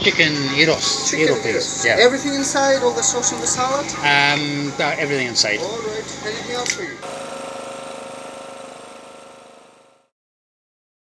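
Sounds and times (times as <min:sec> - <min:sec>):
engine idling: 0:07.0 - 0:10.1.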